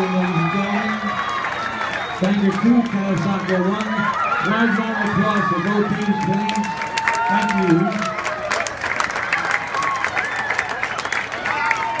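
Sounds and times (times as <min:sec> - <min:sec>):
crowd clapping and cheering: 0:00.0 - 0:12.0.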